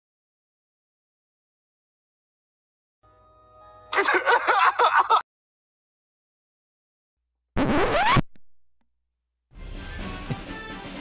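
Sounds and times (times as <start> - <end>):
rising scratch sound effect: 7.6 - 8.3.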